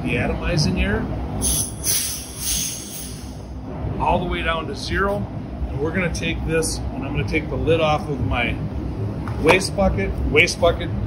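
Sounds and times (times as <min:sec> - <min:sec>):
low background hum: 0:00.0 - 0:11.0
air hissing from regulator: 0:01.4 - 0:03.6.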